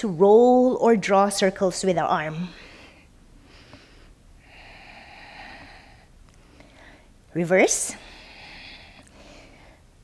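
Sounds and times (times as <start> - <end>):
woman breathing: 2.3 - 10.0.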